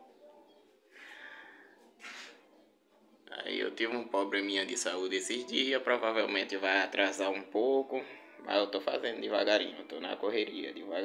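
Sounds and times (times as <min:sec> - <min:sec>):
soft exhale: 0:00.9 - 0:02.2.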